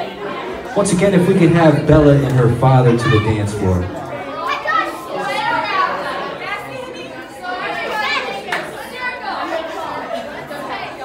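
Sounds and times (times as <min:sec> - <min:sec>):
crowd of young people chattering: 0:00.0 - 0:11.0.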